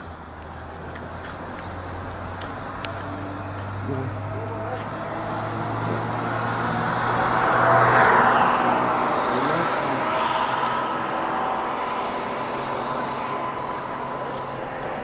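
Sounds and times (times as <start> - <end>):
car traffic noise: 0.0 - 15.0
vehicle passing close by: 0.7 - 15.0.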